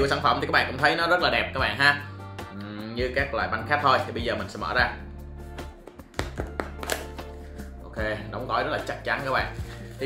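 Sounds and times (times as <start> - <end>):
background music: 0.0 - 10.0
box being opened clicks: 5.9 - 7.3.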